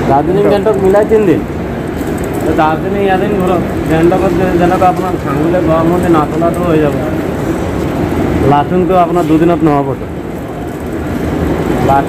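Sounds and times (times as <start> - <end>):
railway platform background hum: 0.0 - 12.0.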